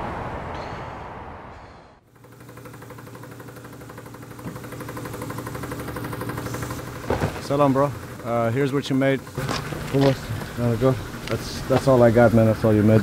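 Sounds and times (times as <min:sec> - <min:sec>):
engine idling: 0:02.1 - 0:13.0.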